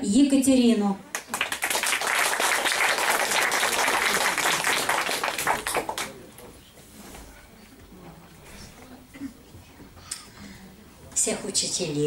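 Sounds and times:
audience applauding: 0:01.1 - 0:06.3.

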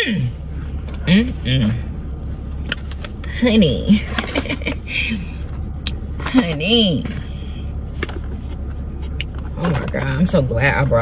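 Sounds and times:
low car cabin hum: 0:00.0 - 0:11.0.

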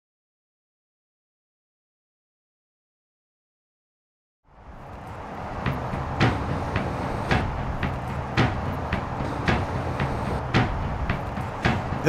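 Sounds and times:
crusher sharp knocks: 0:05.6 - 0:12.0.

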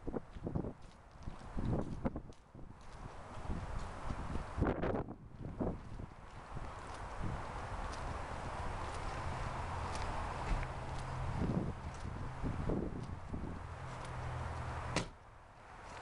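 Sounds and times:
wind on microphone: 0:00.0 - 0:14.1
footsteps on snowy pavement: 0:00.0 - 0:15.0, 0:15.6 - 0:16.0.

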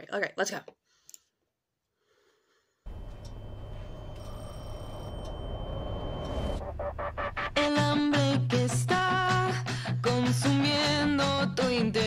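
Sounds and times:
thin high tone: 0:02.9 - 0:06.6
low rumbling drone: 0:02.9 - 0:07.8.

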